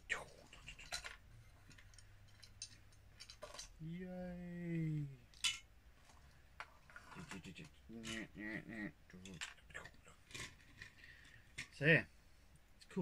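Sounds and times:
man murmuring: 3.8 - 5.3, 7.1 - 10.1.

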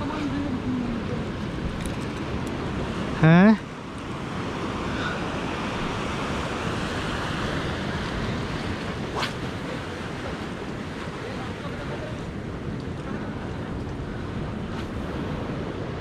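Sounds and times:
surf washing against rocks: 0.0 - 16.0
wind buffeting microphone: 0.0 - 16.0.

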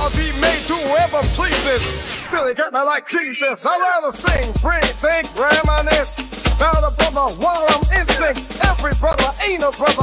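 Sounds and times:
deep bass: 0.0 - 2.2, 4.3 - 10.0
rapping over a beat: 0.0 - 10.0.

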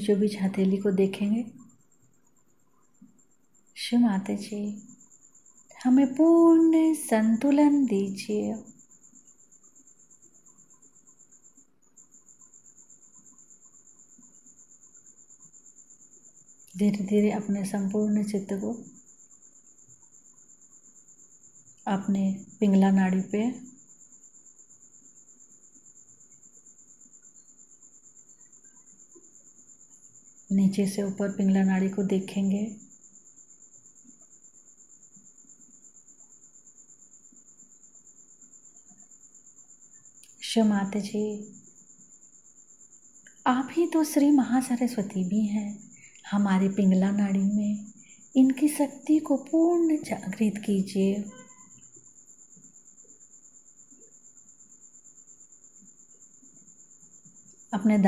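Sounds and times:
cricket trilling: 0.0 - 58.0.

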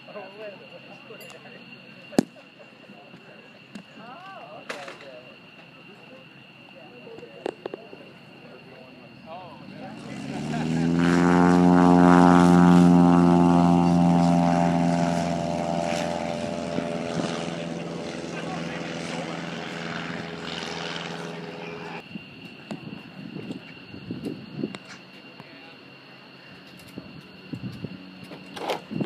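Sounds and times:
propeller airplane engine passing: 9.1 - 29.0.

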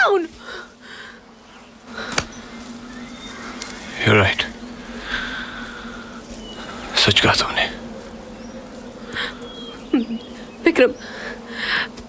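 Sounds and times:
low buzzing hum: 0.0 - 12.0.

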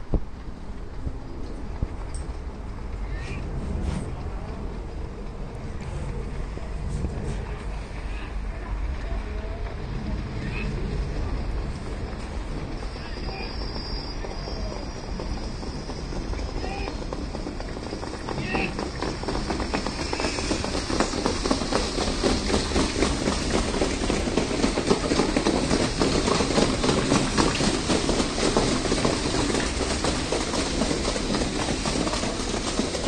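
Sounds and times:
horse hoofbeats on sand: 6.9 - 33.0.

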